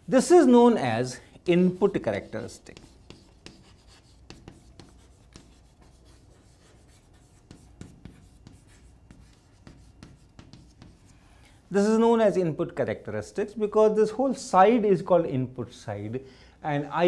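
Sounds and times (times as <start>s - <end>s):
chalk tapping and scratching: 1.6s - 11.3s.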